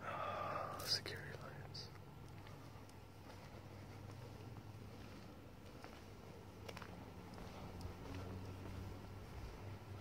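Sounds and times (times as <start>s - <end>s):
person whispering: 0.0s - 2.0s
low steady hum: 0.0s - 10.0s.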